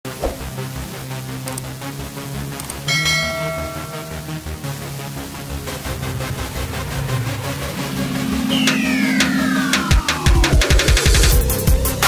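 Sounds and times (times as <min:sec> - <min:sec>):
background music: 0:00.1 - 0:12.0
bright bell ding: 0:02.9 - 0:04.6.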